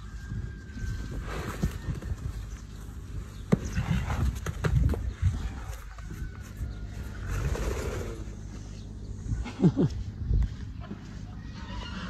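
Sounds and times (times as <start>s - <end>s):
horse thudding on dirt: 3.2s - 6.5s.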